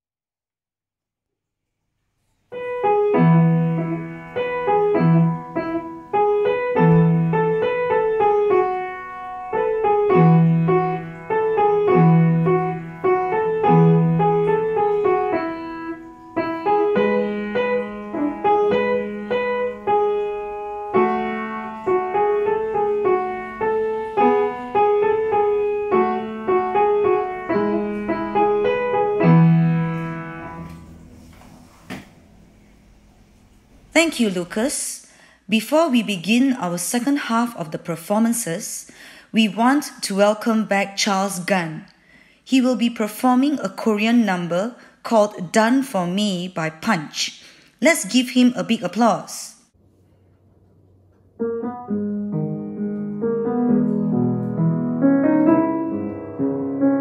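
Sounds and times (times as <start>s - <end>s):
upright piano dance piece: 2.5s - 32.5s, 51.4s - 57.0s.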